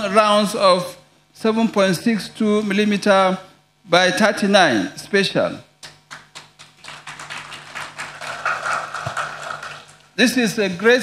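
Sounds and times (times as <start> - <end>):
faint sound system hum: 0.0 - 11.0
audience applause: 6.1 - 10.1.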